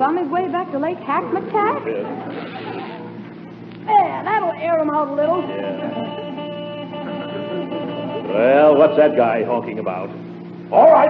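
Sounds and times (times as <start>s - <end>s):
car horn honking: 4.9s - 9.6s
man speaking: 5.4s - 6.0s, 8.3s - 11.0s.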